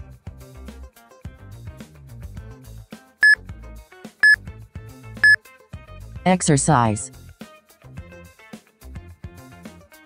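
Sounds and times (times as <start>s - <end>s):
background music with a beat: 4.0s - 5.8s.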